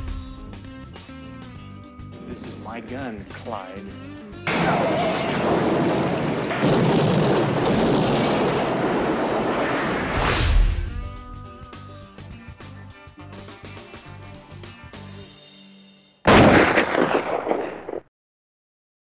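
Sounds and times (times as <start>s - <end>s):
dramatic music: 0.0s - 2.8s, 9.9s - 12.6s
gunfire: 4.5s - 10.2s, 16.3s - 18.1s
explosions: 4.5s - 11.1s, 16.3s - 18.1s
heavy boom: 4.5s - 11.2s, 16.3s - 18.0s
loud blast: 4.5s - 11.3s, 16.3s - 18.0s.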